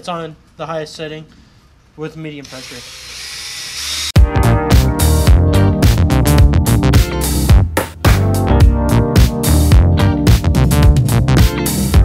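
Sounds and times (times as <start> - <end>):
drill spinning sanding pad: 2.4 - 4.2
background music with a beat: 4.2 - 12.0.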